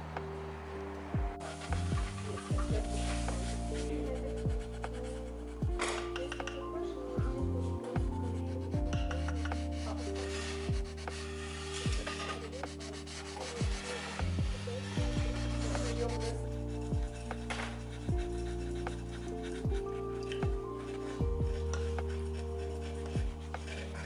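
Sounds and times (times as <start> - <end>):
lo-fi music with slow beat: 0.0 - 24.0.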